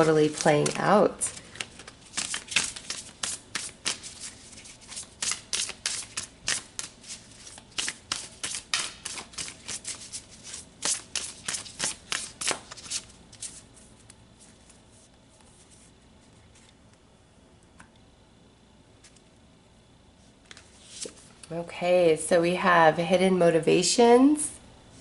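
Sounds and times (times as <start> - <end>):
cards being shuffled: 0.0 - 14.8.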